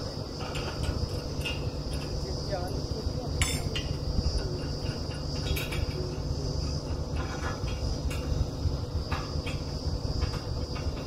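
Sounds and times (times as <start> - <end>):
drilling rig engine idling: 0.0 - 11.0
metallic clanks: 0.0 - 11.0.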